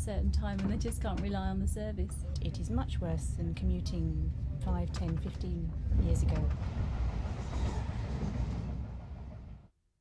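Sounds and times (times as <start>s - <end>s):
train rumbling inside carriage: 0.0s - 9.7s.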